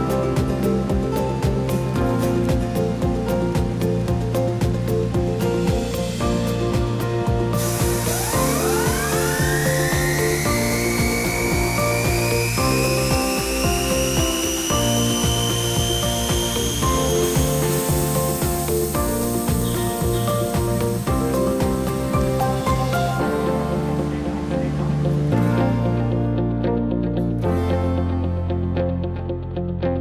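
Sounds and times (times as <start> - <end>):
background music: 0.0 - 30.0
vibrator motor whine: 7.3 - 23.4.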